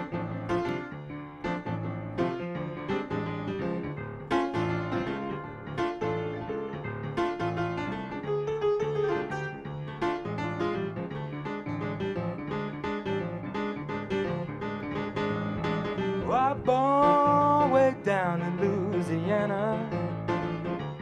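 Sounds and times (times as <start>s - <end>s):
slow blues piano: 0.0s - 21.0s.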